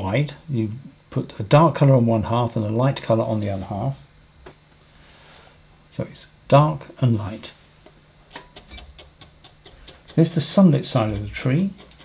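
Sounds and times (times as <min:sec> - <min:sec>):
brush tapping on paper: 0:08.8 - 0:12.0.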